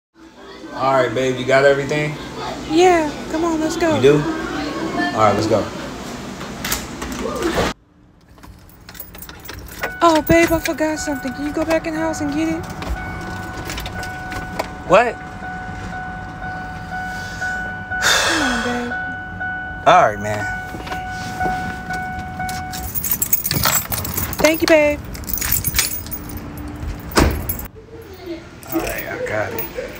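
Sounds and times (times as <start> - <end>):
keys jangling: 8.2 - 14.8, 21.9 - 27.7, 28.6 - 29.9
clattering jingling movement: 8.2 - 16.3, 20.2 - 27.7, 28.6 - 29.9
high electronic tone: 9.9 - 23.6.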